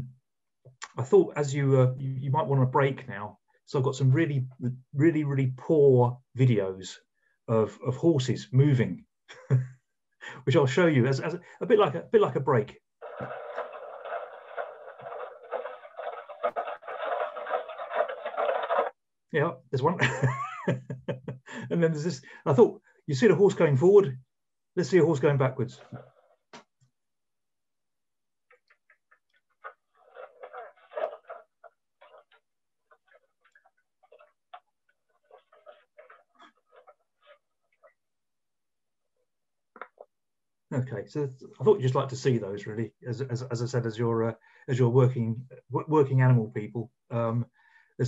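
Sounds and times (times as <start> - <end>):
horse hooves knocking: 13.0 - 18.9
thin rushing outdoor noise: 13.0 - 18.9.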